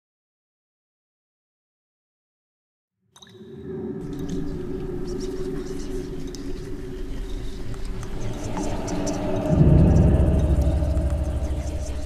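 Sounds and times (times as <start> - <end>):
deep pulsing rumble: 4.1 - 12.0.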